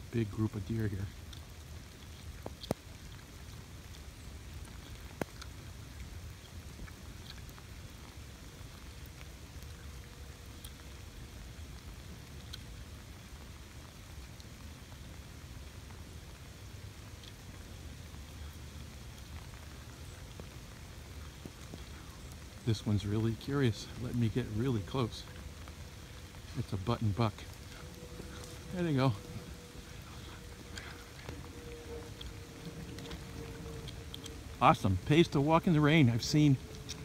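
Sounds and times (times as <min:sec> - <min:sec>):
steady rain falling: 0:00.0 - 0:37.0.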